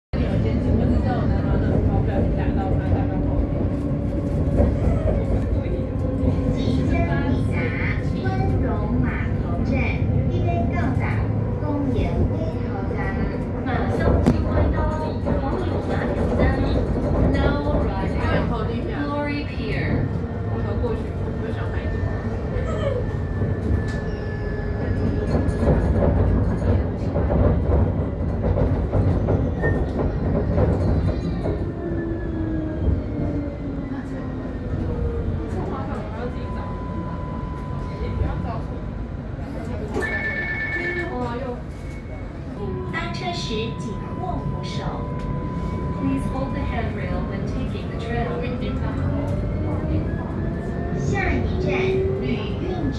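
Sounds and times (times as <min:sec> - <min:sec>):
tram running rumble: 0:00.1 - 0:52.9
people's voices: 0:00.2 - 0:52.9.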